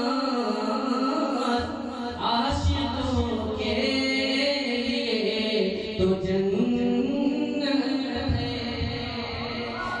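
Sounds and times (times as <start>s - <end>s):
man singing over loudspeakers: 0.0s - 10.0s.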